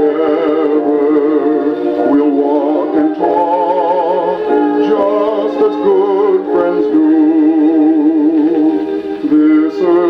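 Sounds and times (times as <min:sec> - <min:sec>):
old record playing sacred song: 0:00.0 - 0:10.0.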